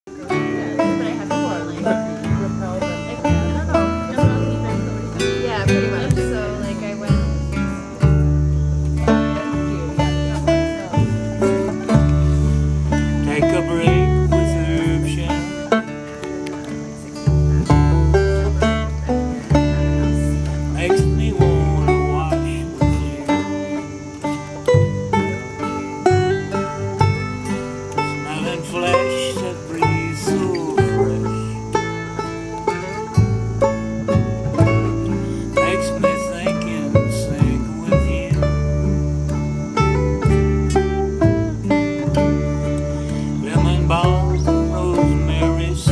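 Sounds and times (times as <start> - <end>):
strummed acoustic guitars: 0.0 - 45.9
upright bass plucking: 0.0 - 45.9.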